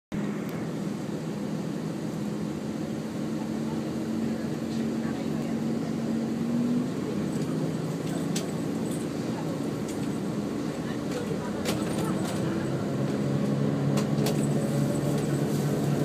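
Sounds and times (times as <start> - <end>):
train diesel engine hum: 0.1 - 16.0.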